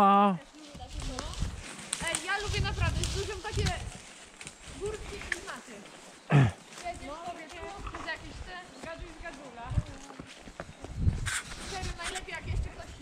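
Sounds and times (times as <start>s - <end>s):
horse hoofbeats on soft track: 0.6s - 13.0s.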